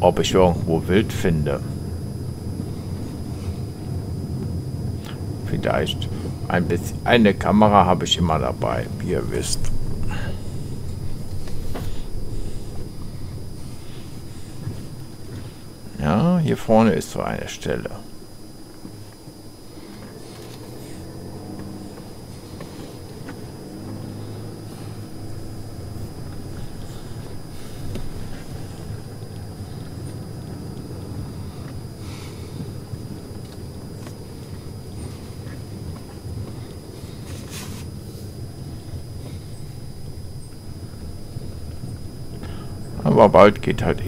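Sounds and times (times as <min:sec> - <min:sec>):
car engine running at low revs: 0:00.0 - 0:44.0.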